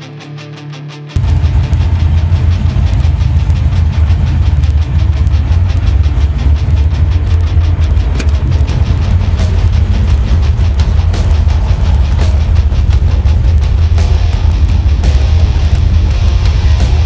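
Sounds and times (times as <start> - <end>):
car engine idling: 1.2 - 17.0.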